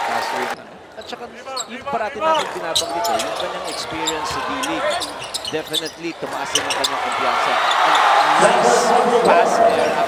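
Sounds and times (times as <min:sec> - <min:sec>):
sneakers squealing on hardwood: 0:01.6 - 0:07.0.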